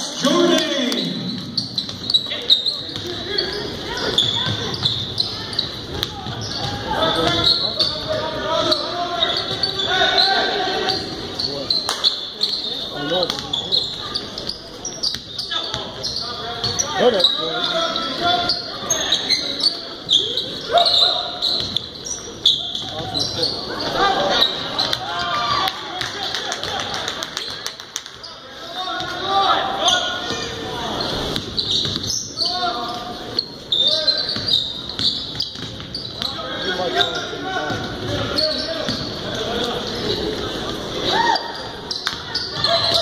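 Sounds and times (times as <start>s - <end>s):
spectators shouting in a gym: 0.0s - 27.6s, 36.2s - 43.0s
basketball bouncing on wooden floor: 35.3s - 35.9s.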